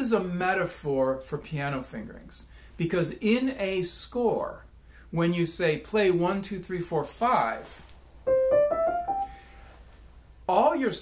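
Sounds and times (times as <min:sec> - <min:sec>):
piano notes stepping upward: 0:08.2 - 0:09.6.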